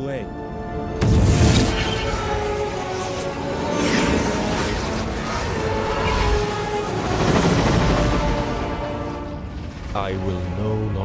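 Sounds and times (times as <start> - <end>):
low rumble and rushing noise: 1.0 - 11.0.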